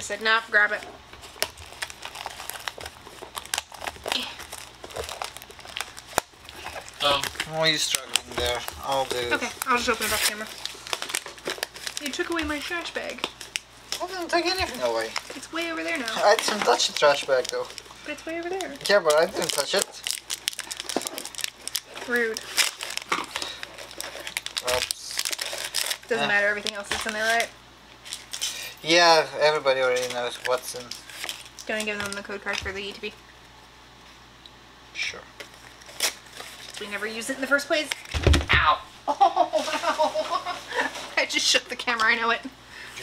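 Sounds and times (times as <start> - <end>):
plastic wrap crinkling: 0.5 - 33.0, 35.4 - 38.5, 39.2 - 42.2.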